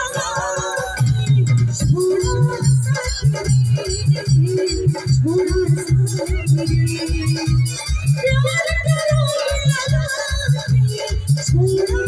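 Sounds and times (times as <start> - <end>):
bass and drum beat: 0.0 - 12.0.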